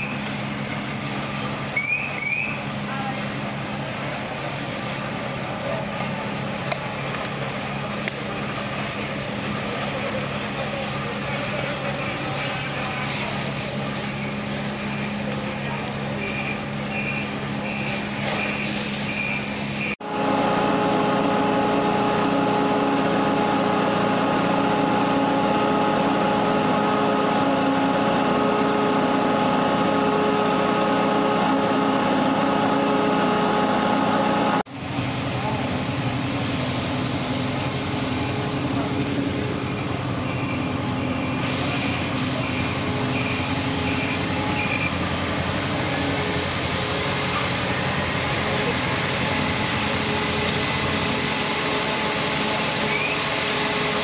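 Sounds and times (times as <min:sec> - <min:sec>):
fire engine running: 0:00.0 - 0:54.0.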